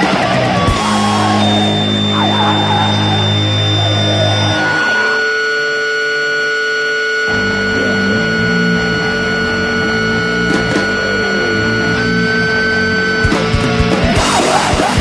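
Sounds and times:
electric guitar feedback drone: 0:00.0 - 0:15.0
low amplifier hum: 0:00.0 - 0:15.0.

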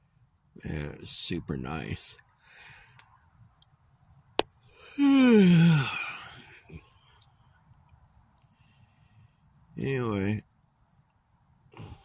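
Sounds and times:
soft breath: 0:02.4 - 0:03.2, 0:08.4 - 0:09.6
man sighing: 0:04.8 - 0:06.6, 0:11.8 - 0:12.0.

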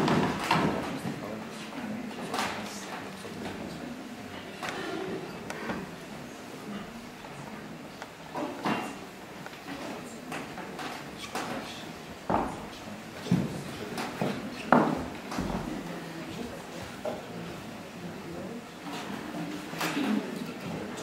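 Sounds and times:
murmur of voices in a hall: 0:00.0 - 0:21.0.

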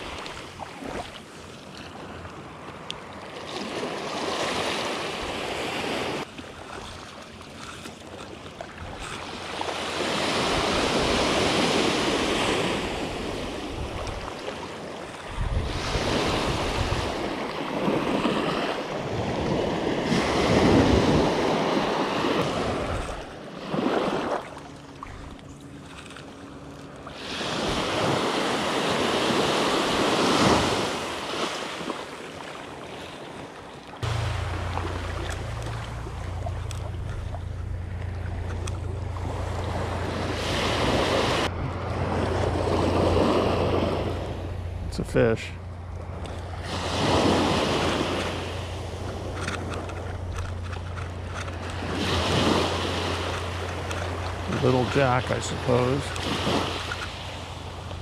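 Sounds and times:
small surf waves washing: 0:00.0 - 0:58.0
wind rumble on microphone: 0:10.4 - 0:26.2, 0:34.0 - 0:45.0.

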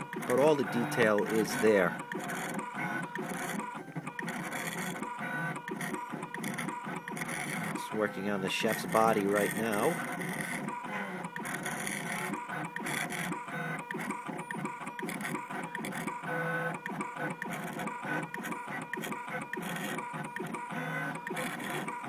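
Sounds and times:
engraving machine motors whirring: 0:00.0 - 0:22.0.

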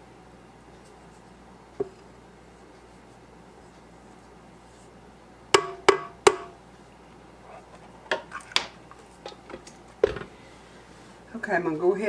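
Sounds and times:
spatula knocking on metal bowl: 0:05.6 - 0:06.6.

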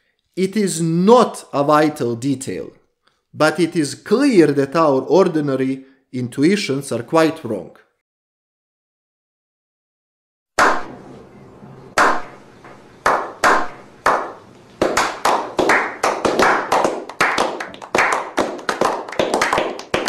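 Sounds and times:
people clapping: 0:13.0 - 0:20.0.

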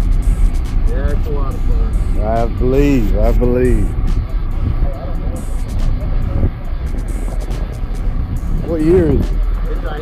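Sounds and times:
background music: 0:00.0 - 0:10.0
heavy low rumble: 0:00.0 - 0:10.0.

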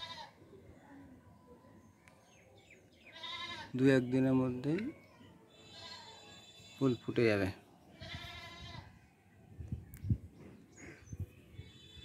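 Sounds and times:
animal bleating: 0:00.0 - 0:00.4, 0:03.1 - 0:03.8, 0:05.5 - 0:06.8, 0:07.9 - 0:08.9.

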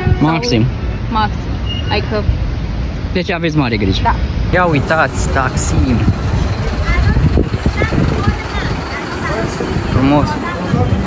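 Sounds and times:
faint voices of passers-by: 0:00.0 - 0:11.0
traffic rumble: 0:00.0 - 0:11.0.

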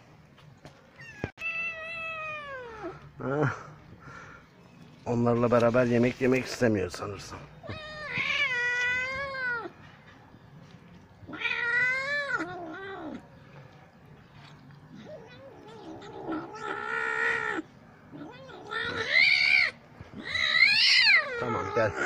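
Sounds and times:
kitten wailing meows: 0:01.0 - 0:02.9, 0:15.0 - 0:22.0.

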